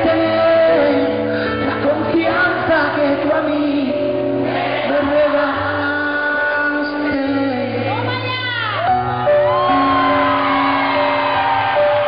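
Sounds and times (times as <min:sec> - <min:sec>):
live band pop ballad: 0:00.0 - 0:12.0.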